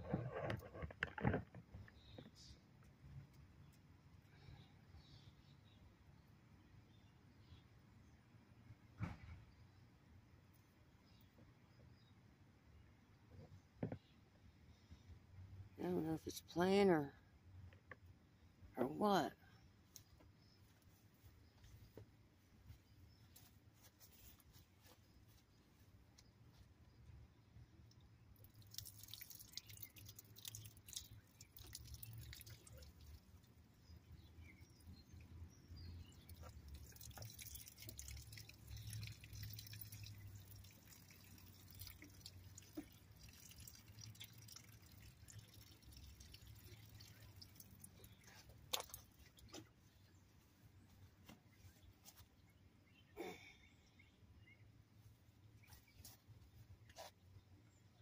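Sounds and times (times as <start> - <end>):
small ticks and clicks: 27.8 - 33.6, 36.0 - 49.7
water dripping onto leaves: 27.8 - 34.8, 36.0 - 49.6.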